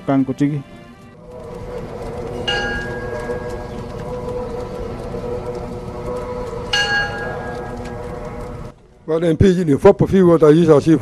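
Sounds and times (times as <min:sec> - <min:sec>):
sustained droning tones: 0:01.1 - 0:09.1
low rumble: 0:01.2 - 0:09.1
bright ringing strike: 0:02.4 - 0:03.8, 0:06.7 - 0:07.9.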